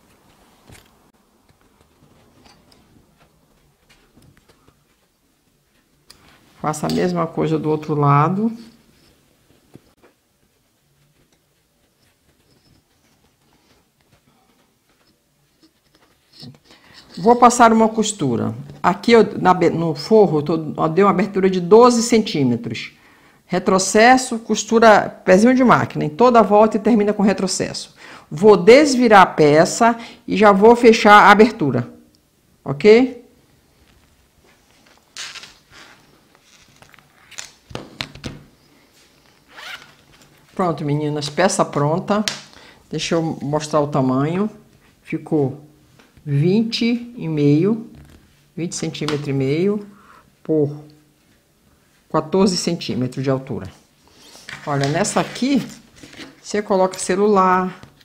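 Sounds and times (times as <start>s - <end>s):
cotton fabric rustling: 33.7s - 37.7s, 38.5s - 42.2s.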